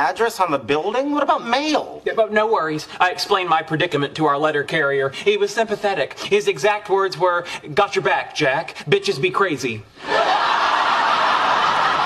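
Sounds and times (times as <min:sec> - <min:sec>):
studio audience laughter: 0:10.0 - 0:12.0.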